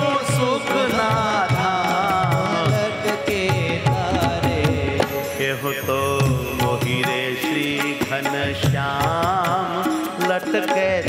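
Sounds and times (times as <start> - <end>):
instrumental accompaniment: 0.0 - 11.0
man singing devotional melody: 0.0 - 11.0
rhythmic percussion: 0.0 - 11.0.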